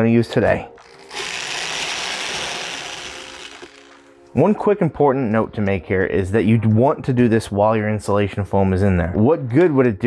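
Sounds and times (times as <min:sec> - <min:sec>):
electric drill boring cardboard: 0:00.8 - 0:04.1.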